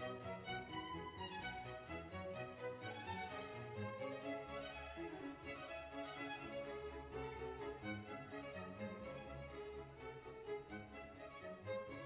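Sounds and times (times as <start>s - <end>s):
bowed strings slow melody: 0.0s - 12.0s.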